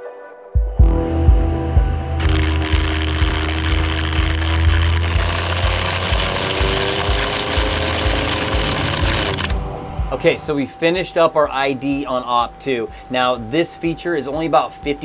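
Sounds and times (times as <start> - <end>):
background music with beat: 0.0 - 15.0.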